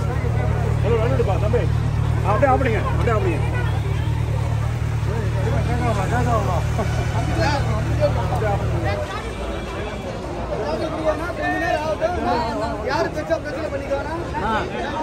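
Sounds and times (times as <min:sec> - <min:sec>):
motorcycle engine idling: 0:00.0 - 0:08.9
crowd chatter: 0:00.0 - 0:15.0.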